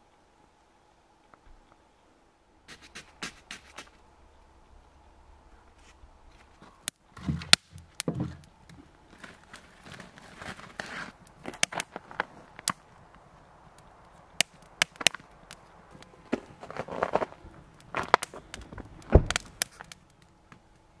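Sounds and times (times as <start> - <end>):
campfire crackling and popping: 2.7 - 21.0
logs knocking on metal grate: 7.2 - 8.5.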